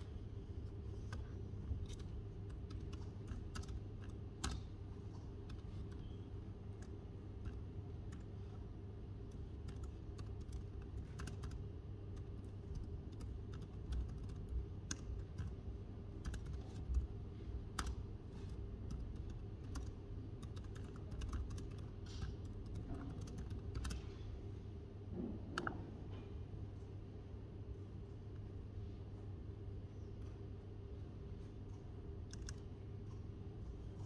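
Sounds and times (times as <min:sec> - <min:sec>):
steady low hum: 0:00.0 - 0:34.0
laptop keyboard typing: 0:00.6 - 0:04.8, 0:05.4 - 0:08.4, 0:09.2 - 0:24.1, 0:32.2 - 0:32.7.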